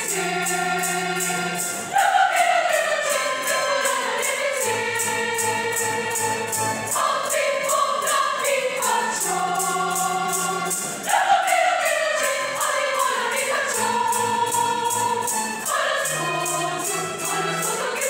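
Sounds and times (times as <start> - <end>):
choir singing in harmony: 0.0 - 18.0
tambourine beat: 0.0 - 18.0.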